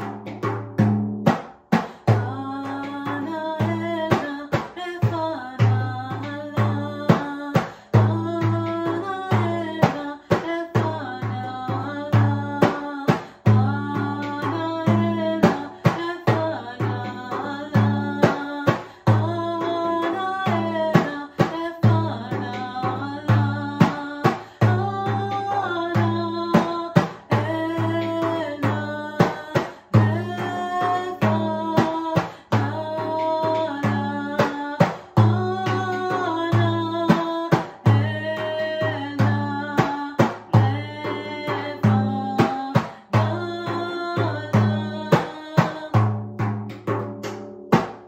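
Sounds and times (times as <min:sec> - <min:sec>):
woman singing: 0:01.7 - 0:47.4.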